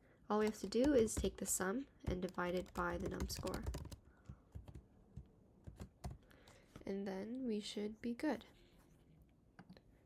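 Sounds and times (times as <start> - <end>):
computer keyboard typing: 0.3 - 6.3.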